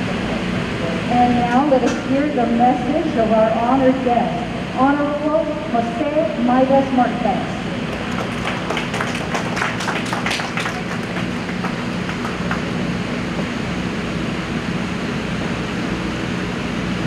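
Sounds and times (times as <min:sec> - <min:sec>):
low background hum: 0:00.0 - 0:17.0
audience clapping: 0:07.8 - 0:13.2.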